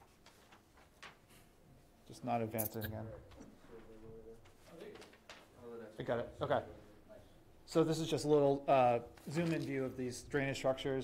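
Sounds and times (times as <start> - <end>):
person speaking: 2.4 - 3.3.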